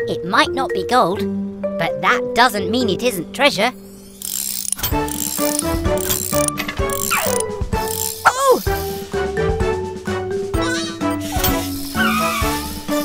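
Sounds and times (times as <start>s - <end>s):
cartoon background music: 0.0s - 4.2s, 4.8s - 13.0s
mechanical ratcheting and clicking: 4.1s - 8.4s.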